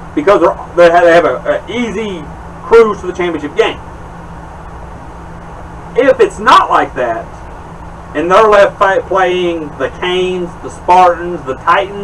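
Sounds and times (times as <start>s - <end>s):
electric fan whirring: 0.0s - 12.0s.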